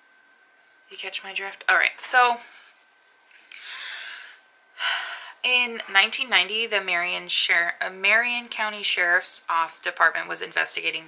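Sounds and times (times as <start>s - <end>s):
woman breathing: 3.5s - 5.4s.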